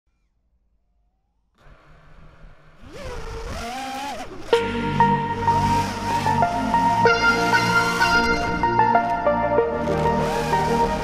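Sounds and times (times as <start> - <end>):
drone motor whine rising: 0.1 - 11.0
drone motors rumble and hiss: 1.6 - 11.0.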